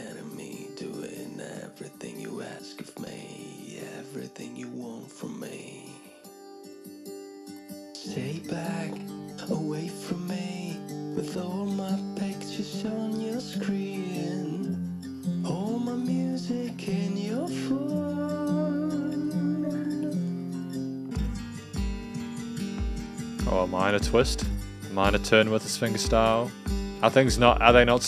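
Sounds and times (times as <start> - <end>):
man singing: 0.0 - 6.1, 8.0 - 14.8, 15.4 - 20.3, 23.5 - 28.0
fingerpicked acoustic guitar: 0.0 - 28.0
low drum beats: 22.8 - 25.3, 26.1 - 28.0
held bass notes: 22.8 - 28.0.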